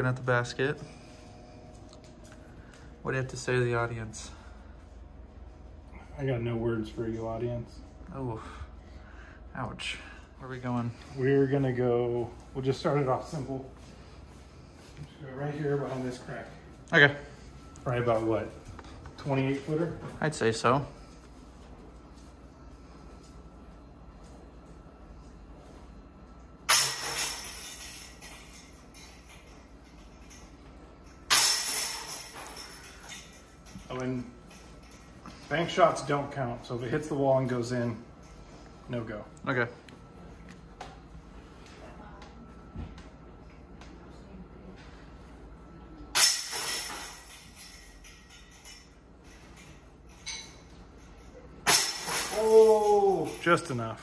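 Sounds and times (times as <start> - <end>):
chains jangling from putter hits: 26.7 - 36.0, 46.2 - 53.8.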